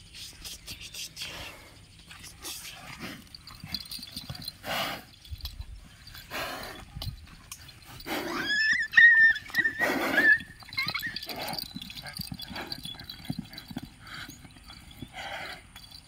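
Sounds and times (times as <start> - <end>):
water buffalo snorting: 1.2 - 16.0.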